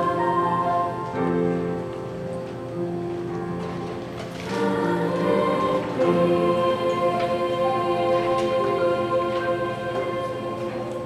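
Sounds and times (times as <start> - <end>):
choir singing sustained chords: 0.0 - 1.8, 4.3 - 11.0.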